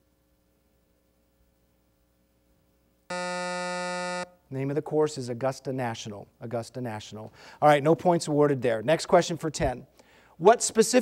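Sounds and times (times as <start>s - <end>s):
quiz show buzzer: 3.1s - 4.4s.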